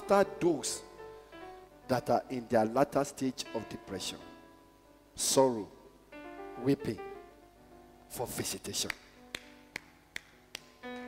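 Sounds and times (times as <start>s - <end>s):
soft keyboard chords: 0.0s - 11.0s
sharp hand claps: 8.8s - 11.0s.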